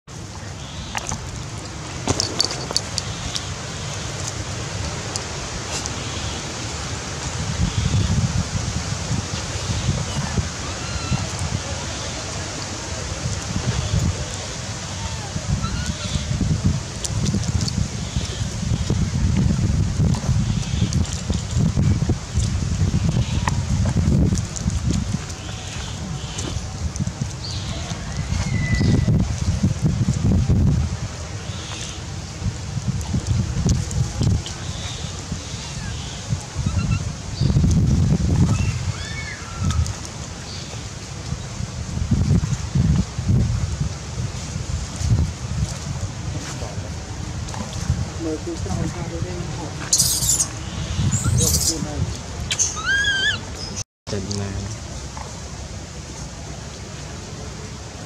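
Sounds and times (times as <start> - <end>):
wind buffeting microphone: 0.1 - 58.0
faint high squeaks or chirps: 49.9 - 51.8.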